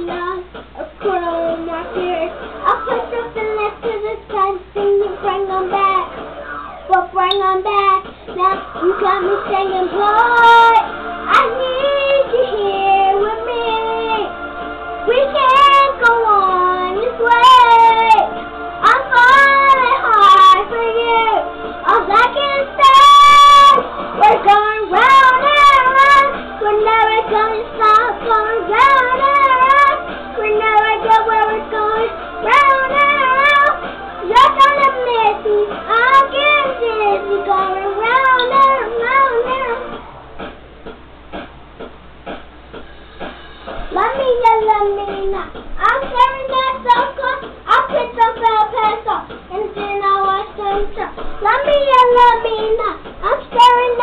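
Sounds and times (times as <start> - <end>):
girl singing: 0.0 - 6.2, 6.9 - 14.4, 15.0 - 39.9, 43.8 - 54.0
backing track beat: 0.0 - 54.0.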